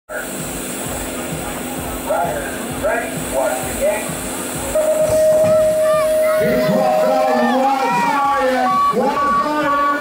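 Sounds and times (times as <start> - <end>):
long electronic beep: 4.7 - 7.6.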